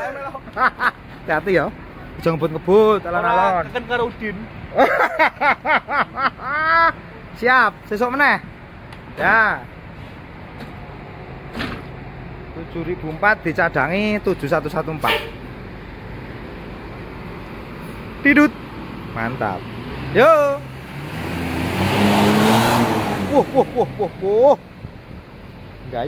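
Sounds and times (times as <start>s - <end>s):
bus diesel engine droning: 0.0s - 26.0s.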